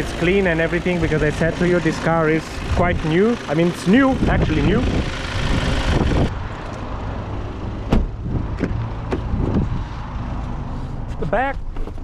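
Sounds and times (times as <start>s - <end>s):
diesel engine idling: 0.0s - 6.4s.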